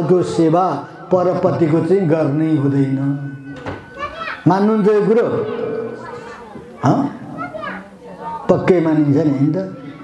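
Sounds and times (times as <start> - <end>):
man speaking into a microphone: 0.0 - 3.6, 4.4 - 6.1, 8.5 - 10.0.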